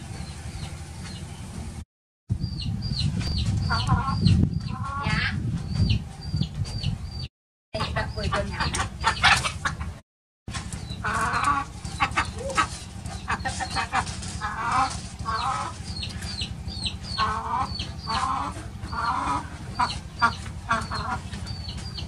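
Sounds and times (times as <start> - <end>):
chicken clucking: 3.3 - 6.0, 7.8 - 22.0.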